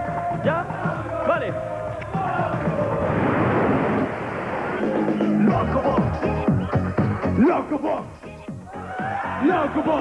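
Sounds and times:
music: 0.0 - 3.7, 4.8 - 10.0
loud dense rushing noise: 2.3 - 5.5.

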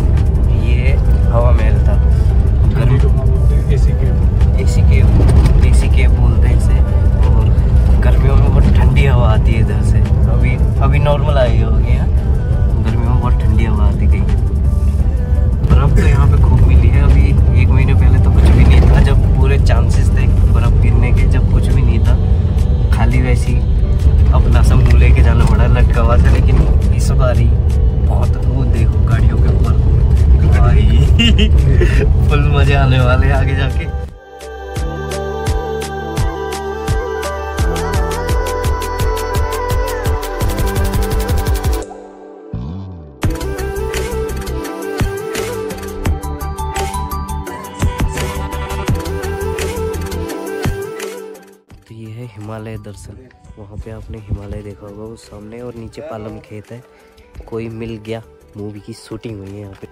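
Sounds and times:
man talking: 0.0 - 14.6, 15.6 - 34.1, 51.9 - 59.9
car cabin rumble: 0.0 - 34.0
background music: 0.0 - 59.9.

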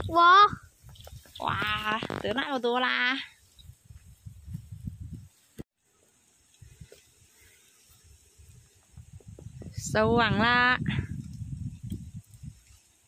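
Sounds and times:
wind rumble on microphone: 0.0 - 2.6, 3.3 - 5.4, 8.0 - 13.0.

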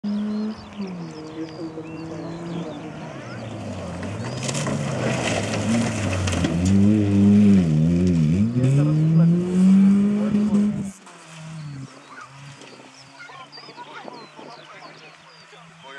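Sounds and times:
rally car engine accelerating: 0.1 - 15.9.

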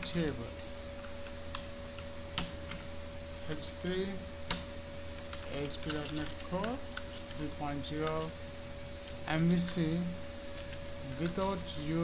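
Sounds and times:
faint electrical hum: 0.0 - 12.0
thin high whine: 0.0 - 12.0
keyboard keys clicking: 5.2 - 7.4, 10.7 - 11.6.

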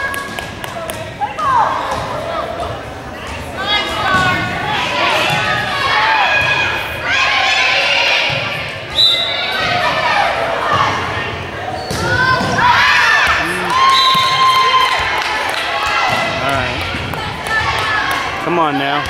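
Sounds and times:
people shouting and cheering: 0.0 - 19.0.

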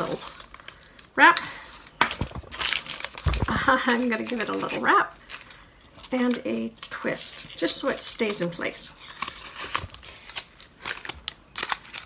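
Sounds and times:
paper liner crinkling: 1.8 - 12.0.

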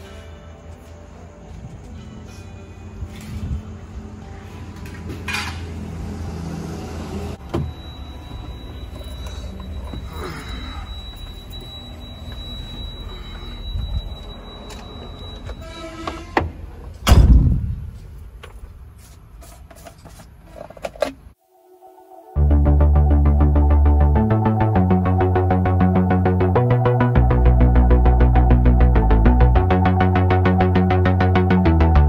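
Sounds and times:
loud thump: 17.0 - 18.0.

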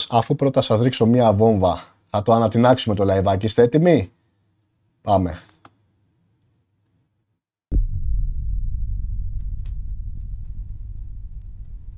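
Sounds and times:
explosion boom and rumble: 7.7 - 11.9.

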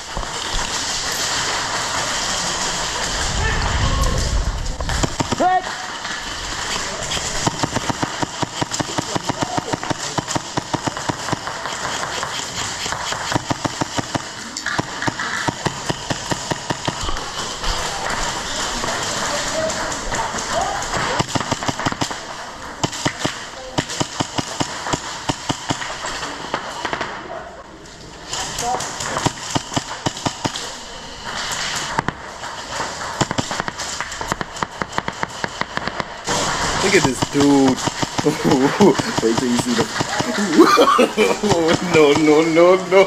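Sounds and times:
airsoft gun shots: 4.9 - 27.2, 28.6 - 30.7, 31.6 - 40.4
play hall noise: 36.8 - 43.0.

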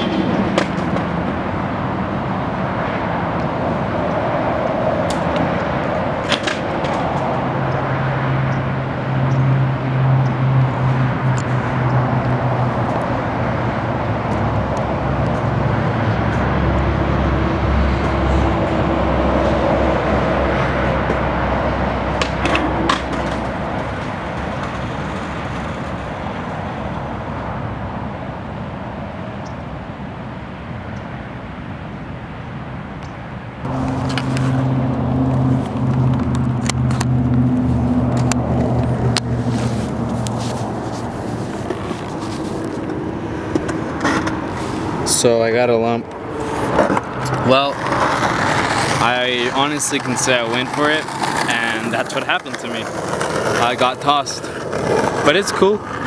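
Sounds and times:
vehicle engine: 0.0 - 31.6, 33.0 - 56.0
road traffic noise: 0.0 - 56.0.

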